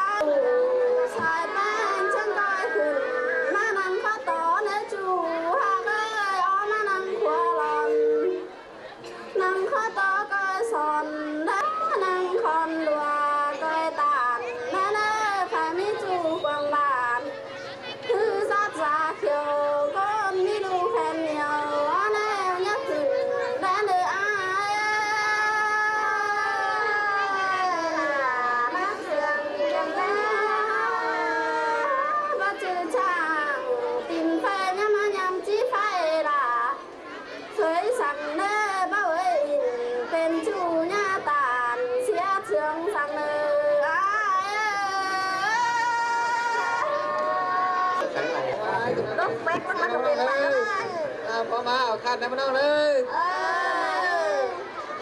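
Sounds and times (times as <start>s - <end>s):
woman singing unaccompanied: 0.0s - 8.6s, 9.2s - 36.9s, 37.5s - 49.9s, 52.7s - 54.6s.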